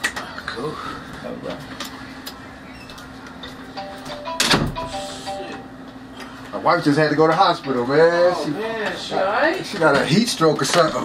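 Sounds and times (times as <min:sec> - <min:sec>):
phone electronic tones: 0:03.8 - 0:05.8.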